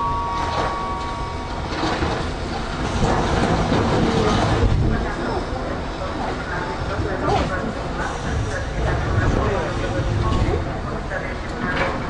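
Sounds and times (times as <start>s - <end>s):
train rumbling: 0.0s - 12.0s
train wheel clatter: 0.0s - 12.0s.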